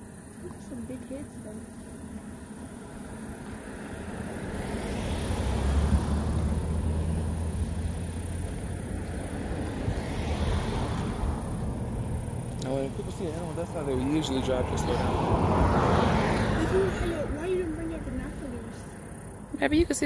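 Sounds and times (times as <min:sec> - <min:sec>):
vehicle engine hum: 0:00.0 - 0:20.0.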